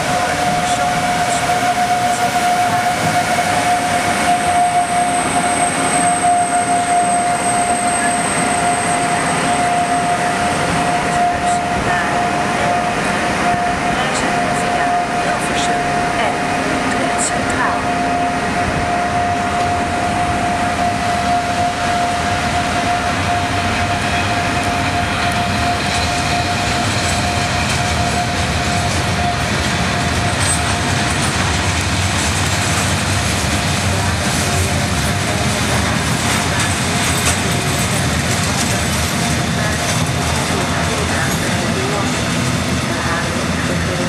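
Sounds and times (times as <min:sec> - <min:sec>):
train wheels rumbling on rails: 0:00.0 - 0:44.0
clatter over rail joints: 0:27.0 - 0:42.9.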